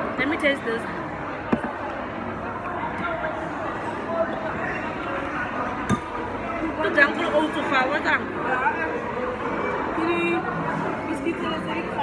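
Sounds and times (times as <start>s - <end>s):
crowd chatter indoors: 0.0s - 12.0s.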